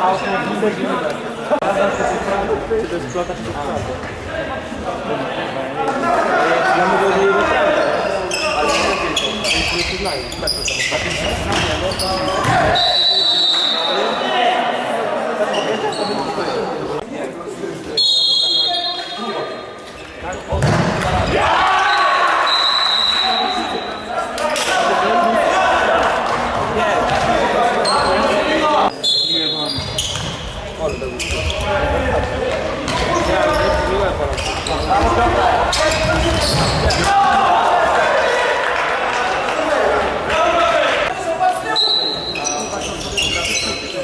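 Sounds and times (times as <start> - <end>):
ball kicked and bouncing: 20.5 - 21.2
players shouting: 21.0 - 28.9, 31.5 - 42.4.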